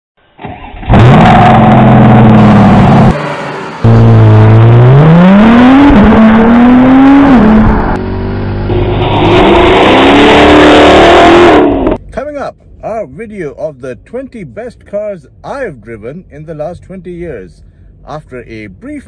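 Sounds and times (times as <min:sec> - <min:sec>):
sports car engine revving: 0:00.8 - 0:12.0
steady engine note: 0:00.9 - 0:12.1.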